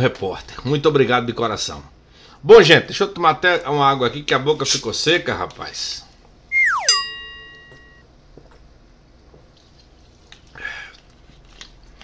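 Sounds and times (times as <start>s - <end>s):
falling whistle-like tone: 6.5s - 8.0s.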